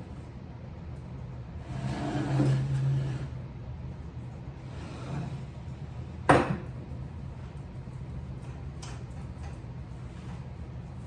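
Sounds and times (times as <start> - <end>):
low steady background hum: 0.0 - 11.0.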